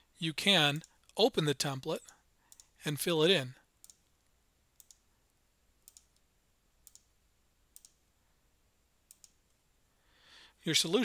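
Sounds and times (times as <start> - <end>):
faint computer mouse clicks: 2.0 - 2.7, 4.8 - 5.0, 5.8 - 7.1, 9.1 - 9.6.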